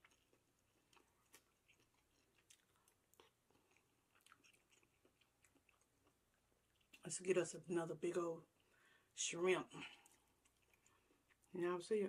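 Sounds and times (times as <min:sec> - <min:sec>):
faint chewing mouth clicks: 0:00.0 - 0:07.1, 0:09.8 - 0:11.6.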